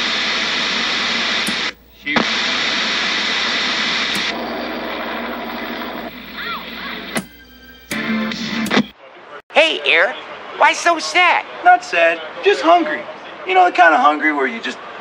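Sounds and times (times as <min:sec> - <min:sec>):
static hiss: 0:00.0 - 0:07.3.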